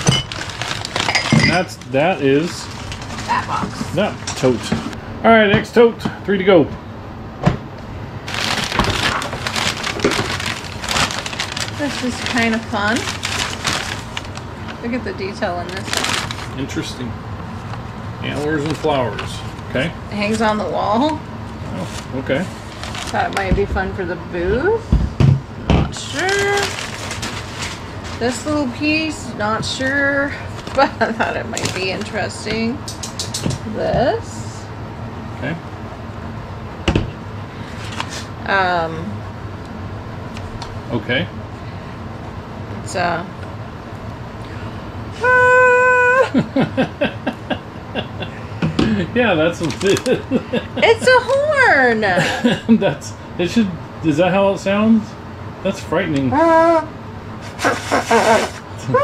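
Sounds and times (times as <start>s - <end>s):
packing paper crinkling and rustling: 0.0s - 4.8s, 8.2s - 23.5s, 26.0s - 28.7s, 30.5s - 32.2s, 37.7s - 38.3s, 49.4s - 50.3s
steady low hum: 0.0s - 59.0s.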